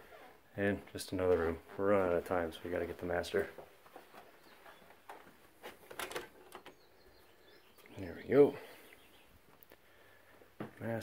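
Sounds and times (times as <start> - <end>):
door knob clicks and knocks: 5.9 - 6.7.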